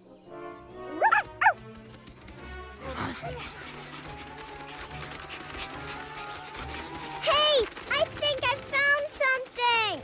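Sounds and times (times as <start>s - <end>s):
soft background music: 0.0s - 10.0s
puppy yipping: 0.9s - 1.6s.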